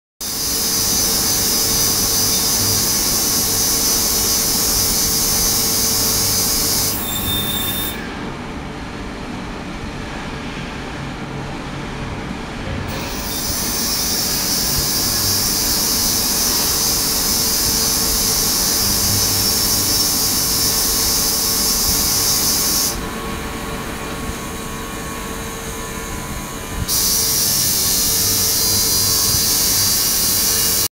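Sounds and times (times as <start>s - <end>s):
ultrasonic tank hissing: 0.2s - 8.0s, 12.9s - 23.1s, 24.3s - 30.9s.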